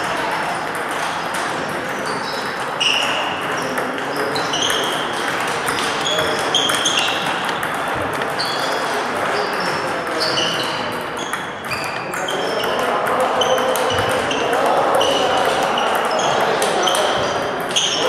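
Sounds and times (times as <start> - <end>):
table tennis balls pinging: 0.0 - 18.0.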